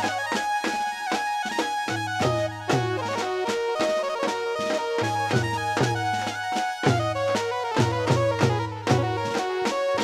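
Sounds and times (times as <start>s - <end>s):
keyboard melody: 0.0s - 10.0s
drum beat: 1.5s - 10.0s.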